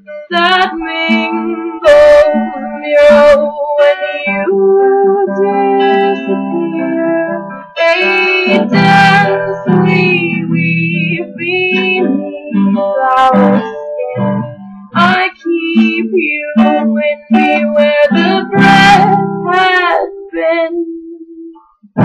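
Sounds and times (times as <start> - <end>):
strummed guitar chords: 0.0 - 22.0.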